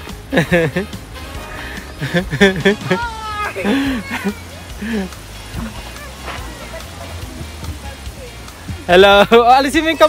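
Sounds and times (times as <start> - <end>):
quiet background music: 0.0 - 10.0
faint voices: 2.8 - 8.9.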